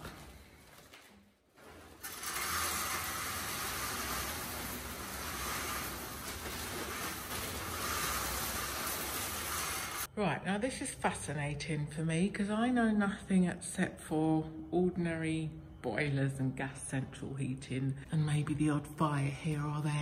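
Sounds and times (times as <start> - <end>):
wood pellets pouring: 1.7 - 10.1.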